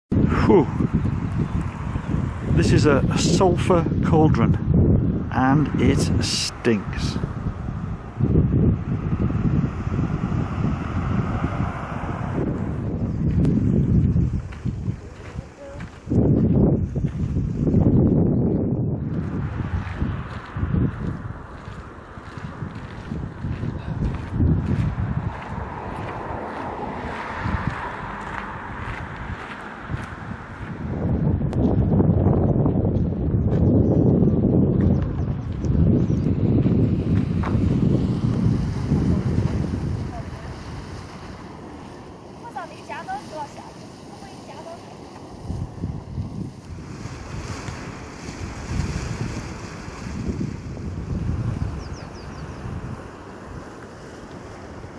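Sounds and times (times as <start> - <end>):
wind buffeting microphone: 0.0 - 54.9.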